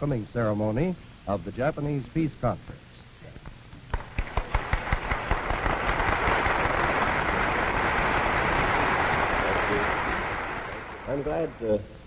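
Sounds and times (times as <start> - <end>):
audience applauding: 4.0 - 11.8.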